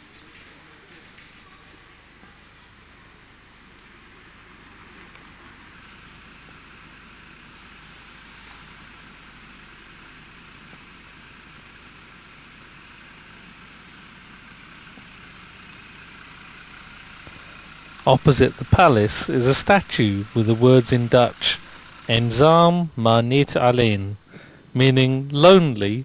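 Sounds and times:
distant city traffic rumble: 0.0s - 26.0s.

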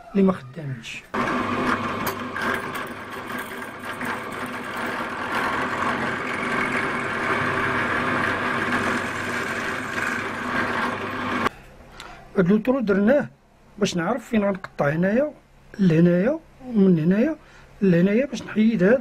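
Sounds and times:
drill press boring metal: 1.2s - 11.5s.

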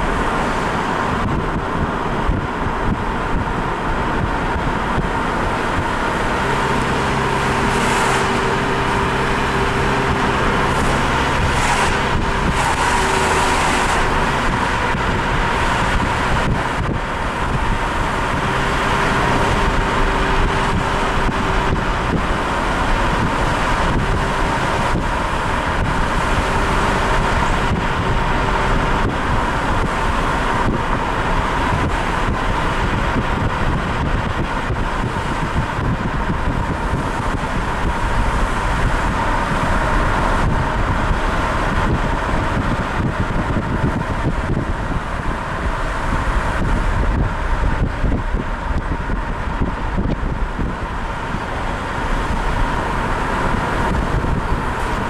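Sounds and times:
car road and wind noise: 0.0s - 55.0s.

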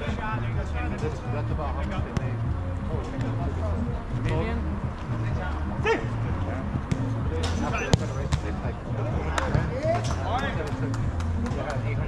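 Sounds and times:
soccer ball kicks: 6.7s - 11.6s.

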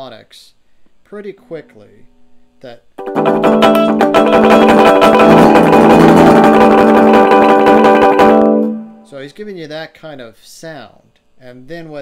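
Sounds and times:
electric guitar harmonics strummed: 3.0s - 9.1s.

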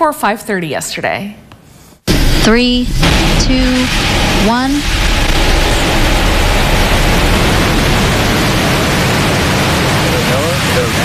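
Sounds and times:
rocket engines roaring: 2.1s - 11.0s.

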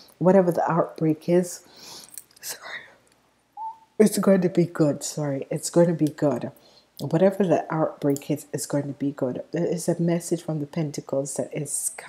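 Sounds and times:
thin whistle-like tone: 3.6s - 3.9s
woman breathing softly: 6.6s - 7.0s.

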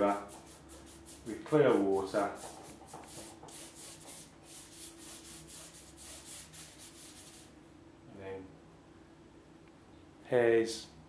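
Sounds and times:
brush swishing over paper: 0.0s - 7.5s.

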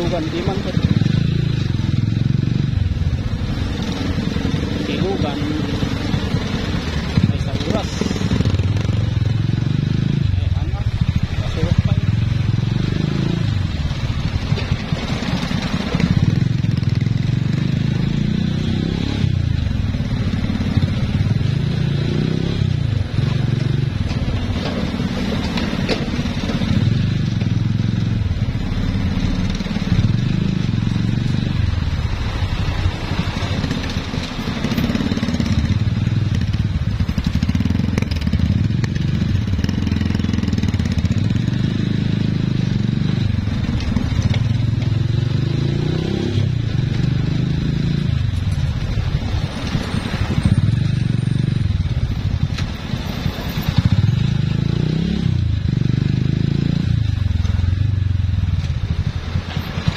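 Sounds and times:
motorcycle engine rumble: 0.0s - 59.9s.

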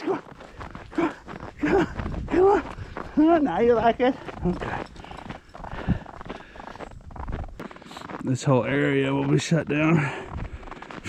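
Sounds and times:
dog paws crunching through snow: 0.0s - 11.0s.

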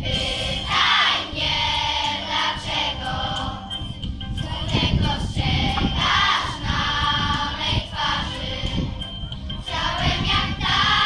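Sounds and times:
children's choir singing: 0.0s - 11.0s
instrumental backing music: 0.0s - 11.0s.

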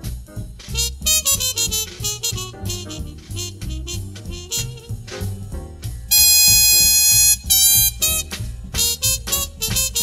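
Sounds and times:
jazz rhythm section: 0.0s - 10.0s
horn playing high notes: 0.8s - 5.1s, 6.1s - 10.0s.

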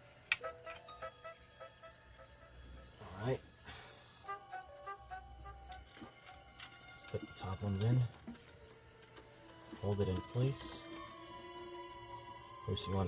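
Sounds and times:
faint background music: 0.0s - 13.0s.

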